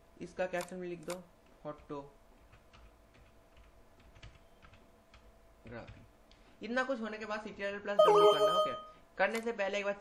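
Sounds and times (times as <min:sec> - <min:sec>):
keyboard typing: 0:01.8 - 0:06.0
low steady hum: 0:08.0 - 0:09.2.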